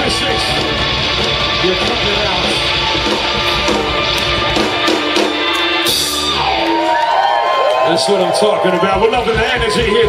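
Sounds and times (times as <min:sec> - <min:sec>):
live band guitar music: 0:00.0 - 0:10.0.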